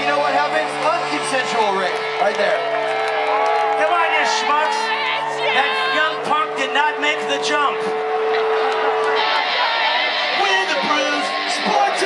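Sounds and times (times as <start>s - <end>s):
concert crowd noise: 0.0s - 12.0s.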